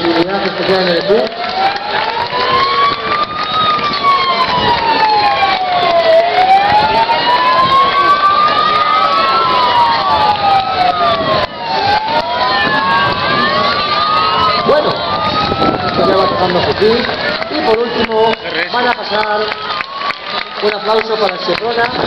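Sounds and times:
emergency vehicle sirens wailing: 0:00.0 - 0:22.0.

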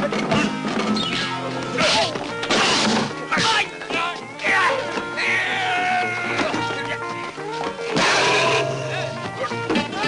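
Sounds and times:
background film music: 0:00.0 - 0:10.0
punch impacts: 0:08.0 - 0:08.7.

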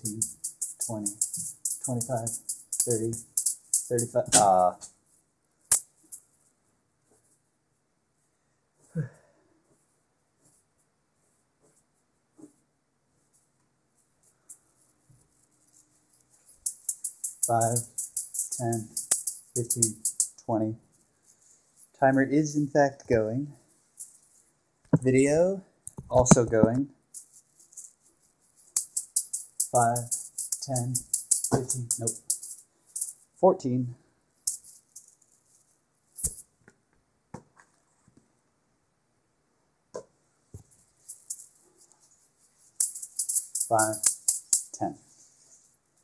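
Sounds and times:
jingling rattle of juggled balls: 0:00.0 - 0:04.9, 0:05.7 - 0:06.4, 0:14.2 - 0:22.7, 0:23.5 - 0:25.1, 0:27.1 - 0:33.4, 0:34.4 - 0:36.5, 0:40.6 - 0:46.0
juggling balls knocking: 0:28.8 - 0:33.1.

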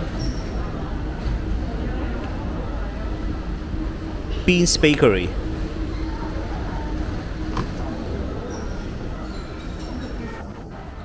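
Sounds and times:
shopping mall background rumble: 0:00.0 - 0:11.0.

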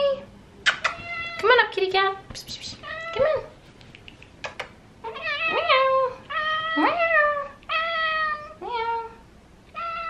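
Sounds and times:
cat meowing: 0:00.8 - 0:01.4, 0:05.1 - 0:09.2.

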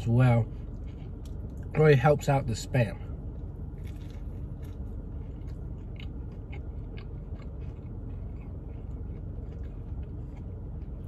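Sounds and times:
person chewing food: 0:00.5 - 0:01.7, 0:03.2 - 0:11.0.

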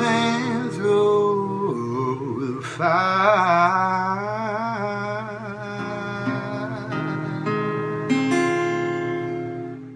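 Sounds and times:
person singing with vibrato: 0:00.0 - 0:09.6
acoustic guitar picking: 0:00.0 - 0:09.9.

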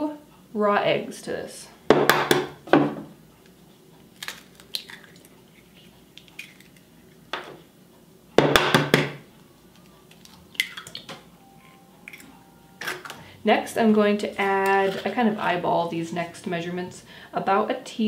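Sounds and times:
egg knocking on wooden table: 0:01.9 - 0:03.1, 0:08.4 - 0:09.2.

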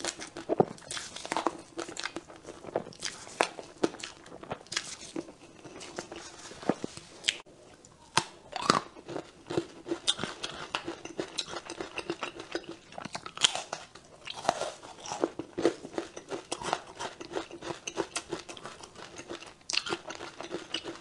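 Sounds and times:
crunchy chewing: 0:00.0 - 0:07.5, 0:08.1 - 0:21.0.

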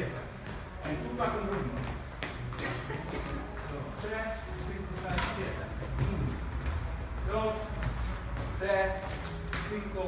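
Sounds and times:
background music with low beat: 0:00.0 - 0:10.0.

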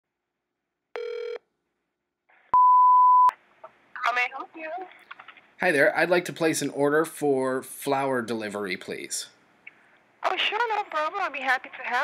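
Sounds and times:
short buzzy telephone tone: 0:01.0 - 0:01.4
pure telephone beep: 0:02.6 - 0:03.3.

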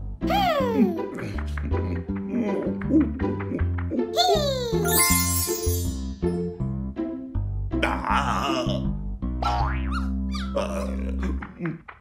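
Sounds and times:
cartoon background music: 0:00.0 - 0:11.9
grimacing vocal outburst: 0:07.8 - 0:08.9
boing-like comic sound effects: 0:09.4 - 0:10.6.

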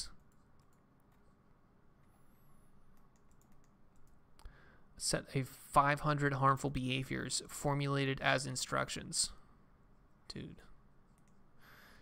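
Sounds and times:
computer keyboard and mouse clicks: 0:00.2 - 0:01.4, 0:02.9 - 0:04.2, 0:11.1 - 0:11.4.

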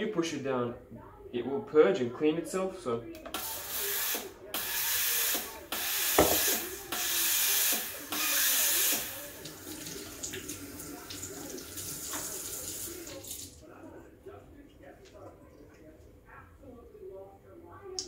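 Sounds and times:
knock: 0:06.2 - 0:06.5.

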